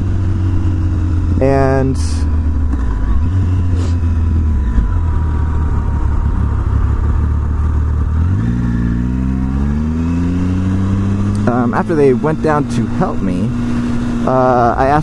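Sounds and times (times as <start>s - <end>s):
motorcycle engine accelerating: 0.0s - 15.0s.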